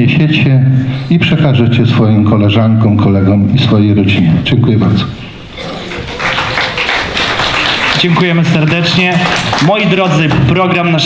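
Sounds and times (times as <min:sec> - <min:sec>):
audience applause in a hall: 0:05.6 - 0:10.4.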